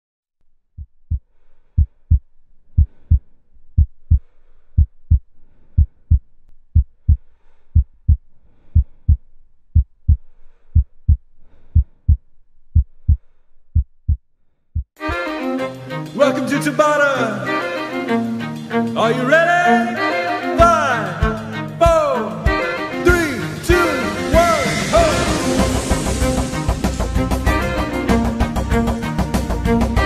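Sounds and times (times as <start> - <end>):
heartbeat: 0.8 - 15.0.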